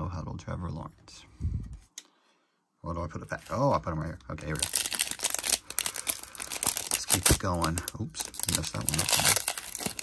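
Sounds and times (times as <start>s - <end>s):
foil wrapper crinkling: 4.4s - 10.0s.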